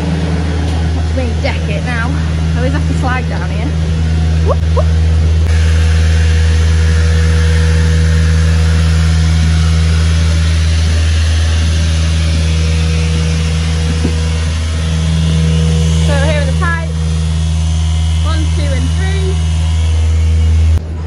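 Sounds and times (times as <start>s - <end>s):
pump machinery humming: 0.0s - 21.0s.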